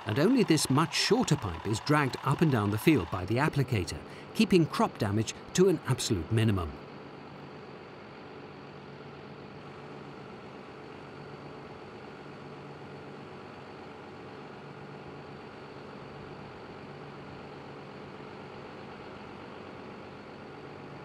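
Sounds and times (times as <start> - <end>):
tractor engine running: 0.0 - 6.7.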